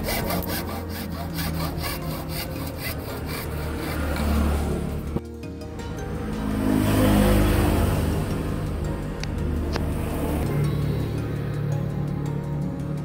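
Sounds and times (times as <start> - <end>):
hacksaw cutting plastic pipe: 0.0 - 5.0
background music: 0.0 - 13.0.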